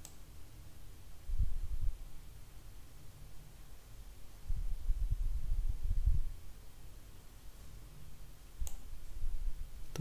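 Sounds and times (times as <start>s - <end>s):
computer mouse clicks: 0.0s - 0.2s, 8.6s - 8.9s.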